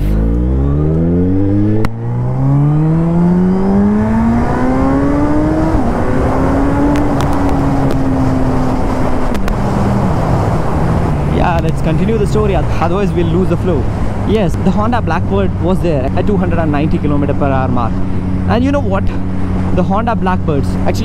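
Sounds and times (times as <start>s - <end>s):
motorcycle engine accelerating: 0.0s - 12.4s
wind rush: 3.1s - 16.3s.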